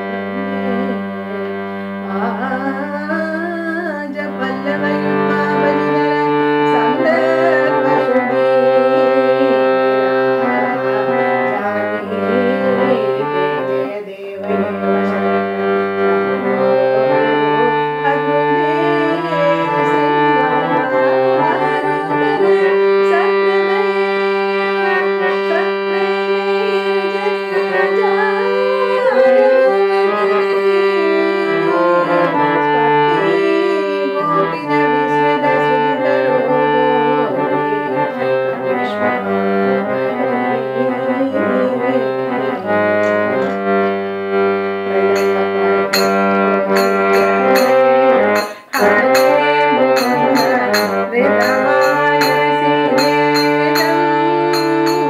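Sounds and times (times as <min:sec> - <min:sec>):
harmonium melody: 0:00.0 - 0:55.0.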